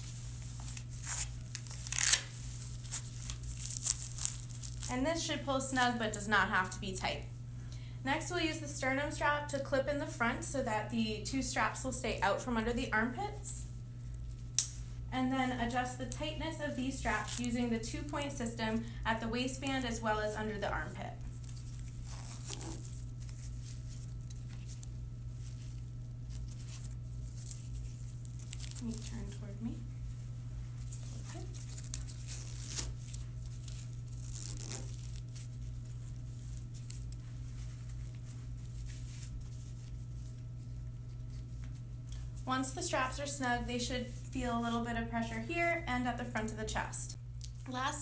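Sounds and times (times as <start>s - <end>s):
steady low hum: 0.0s - 48.0s
hook-and-loop fastener ripping: 0.6s - 4.9s, 21.4s - 23.4s, 31.3s - 35.3s
fabric rustling: 21.3s - 29.3s, 30.1s - 41.8s.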